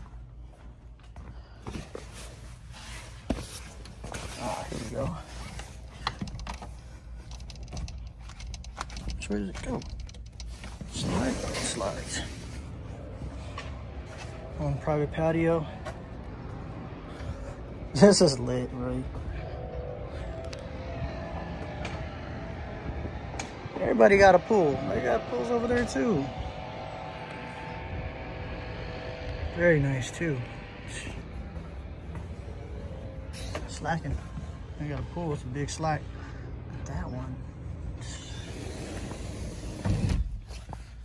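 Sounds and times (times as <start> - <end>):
steady low rumble: 0.0 - 41.0.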